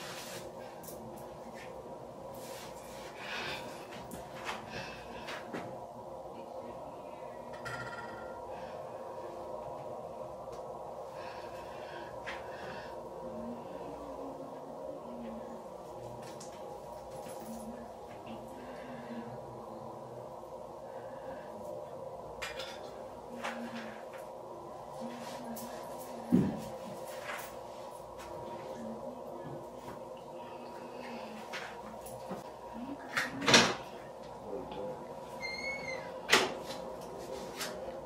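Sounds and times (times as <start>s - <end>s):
steady hum: 0.0s - 38.0s.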